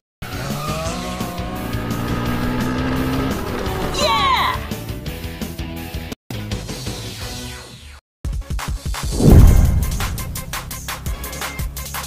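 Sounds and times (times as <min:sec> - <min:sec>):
tyres skidding: 0:00.2 - 0:04.2
kart engines running: 0:00.3 - 0:04.2.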